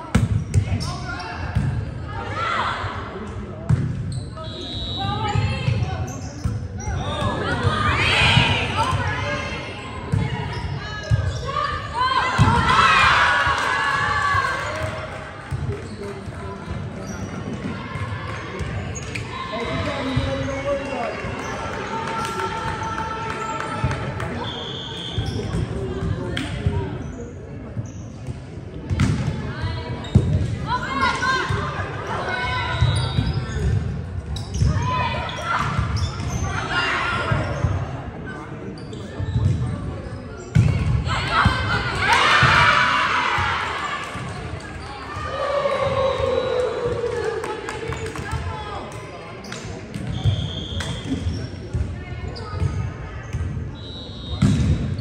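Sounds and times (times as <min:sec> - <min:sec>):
players calling and shouting: 0:00.0 - 0:27.1, 0:39.0 - 0:55.0.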